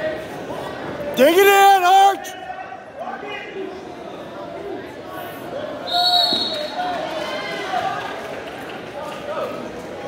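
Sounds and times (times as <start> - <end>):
voices in a gym: 0.0 - 10.0
referee's whistle blast: 5.9 - 6.8.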